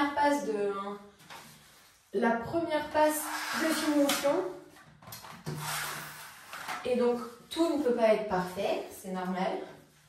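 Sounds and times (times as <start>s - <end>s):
person speaking: 6.8s - 9.8s.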